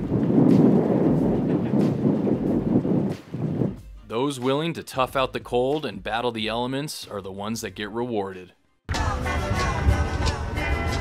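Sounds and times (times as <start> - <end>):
gusty wind buffeting microphone: 0.0 - 4.0.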